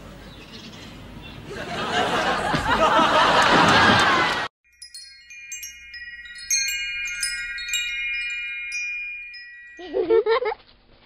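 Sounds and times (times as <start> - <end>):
wind chimes tinkling: 4.6 - 10.5.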